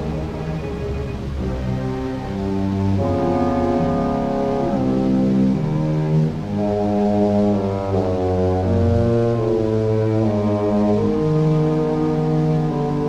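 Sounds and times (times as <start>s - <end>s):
low brass sustained chords: 0.0s - 13.0s.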